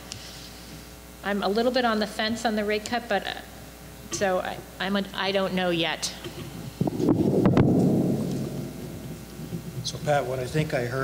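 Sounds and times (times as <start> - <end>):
sharp knocks: 6.9 - 10.0
loud muffled low rumble: 6.9 - 10.9.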